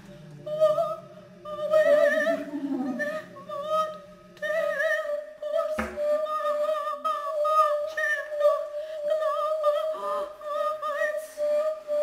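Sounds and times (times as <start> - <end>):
woman singing: 0.0 - 12.0.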